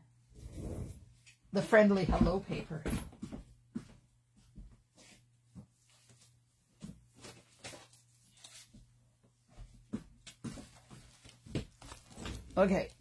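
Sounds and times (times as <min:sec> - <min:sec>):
paper and cellophane rustling: 0:10.7 - 0:13.0.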